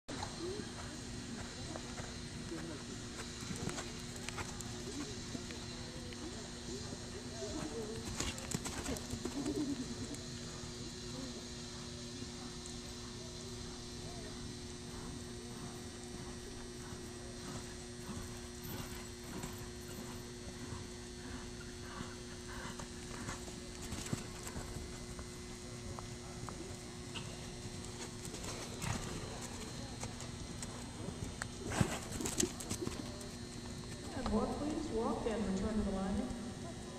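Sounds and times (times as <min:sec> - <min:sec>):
hoofbeats on soft dirt: 0:00.1 - 0:09.5, 0:11.5 - 0:35.4
steady low hum: 0:00.1 - 0:36.9.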